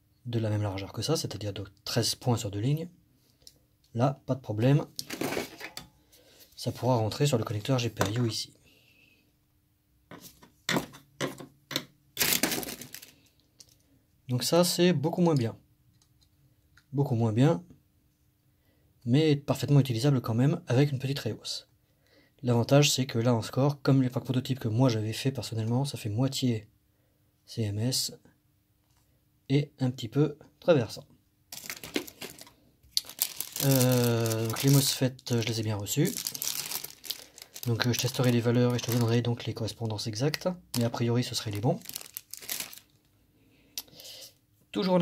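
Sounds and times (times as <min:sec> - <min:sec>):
plastic bag crinkling: 0:05.0 - 0:05.8, 0:12.2 - 0:13.3, 0:31.5 - 0:39.8, 0:40.8 - 0:43.1
ribbon cable crackling rustle: 0:12.2 - 0:13.8, 0:31.5 - 0:39.3, 0:40.8 - 0:43.0.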